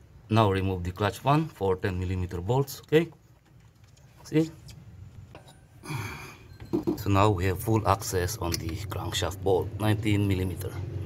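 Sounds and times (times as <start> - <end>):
person exhaling breathily: 5.8 - 6.5.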